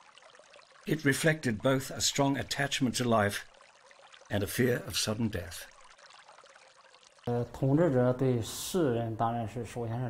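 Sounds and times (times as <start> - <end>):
water trickling: 0.0 - 8.8
man speaking: 7.3 - 10.0.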